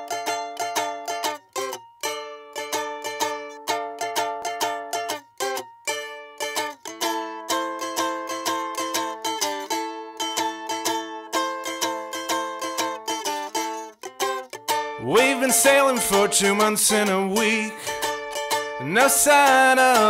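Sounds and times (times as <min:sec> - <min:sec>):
acoustic guitar strumming: 0:00.0 - 0:20.0
balalaika strumming: 0:00.0 - 0:20.0.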